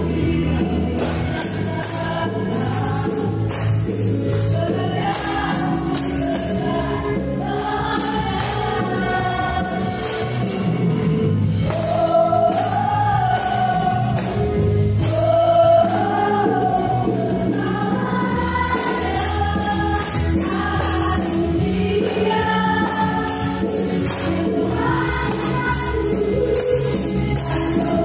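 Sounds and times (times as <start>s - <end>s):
group of voices singing: 0.0s - 28.0s.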